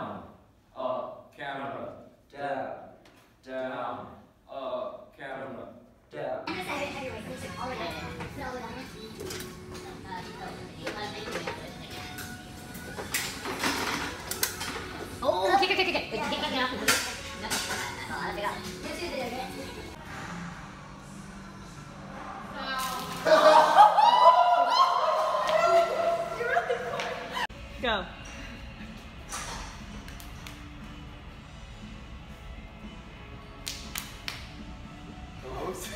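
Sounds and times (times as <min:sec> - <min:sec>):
faint background music: 0:00.0 - 0:35.9.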